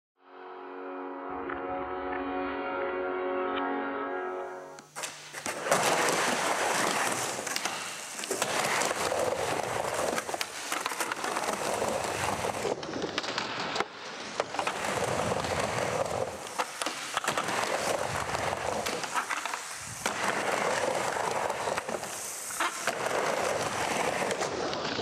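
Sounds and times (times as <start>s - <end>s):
droning musical chord: 0.2s - 4.9s
skateboard clacks: 5.0s - 25.0s
skateboard wheels rolling on ramp: 5.0s - 25.0s.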